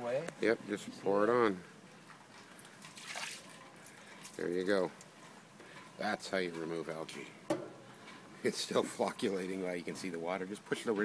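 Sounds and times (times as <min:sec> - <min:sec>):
water splashing on concrete: 0:02.8 - 0:03.6.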